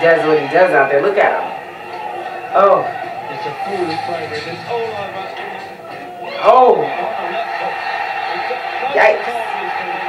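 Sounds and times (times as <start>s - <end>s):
background din: 1.3s - 7.4s
male commentator speaking: 2.6s - 6.0s.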